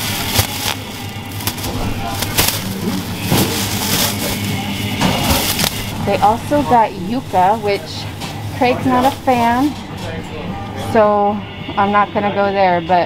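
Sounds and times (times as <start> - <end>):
plastic bag rustling: 0.0 - 11.0
steady low hum: 0.0 - 13.0.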